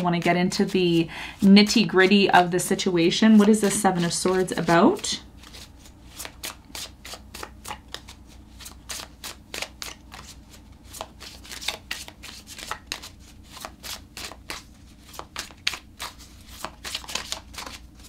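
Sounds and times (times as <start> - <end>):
cards being shuffled: 3.0 - 18.0.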